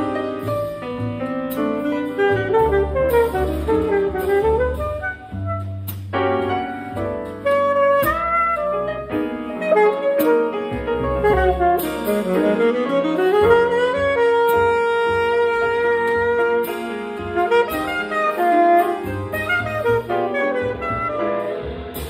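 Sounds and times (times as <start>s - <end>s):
piano chords: 0.0s - 22.0s
upright bass notes: 0.0s - 22.0s
saxophone melody: 1.8s - 5.9s, 7.4s - 21.6s.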